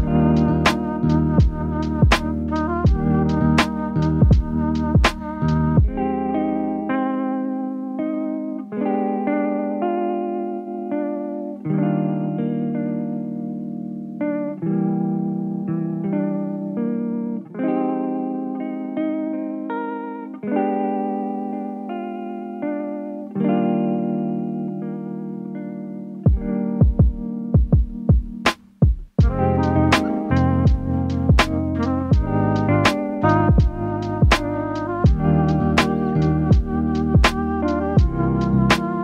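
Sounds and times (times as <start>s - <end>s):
guitar chords with chorus effect: 0.0s - 39.0s.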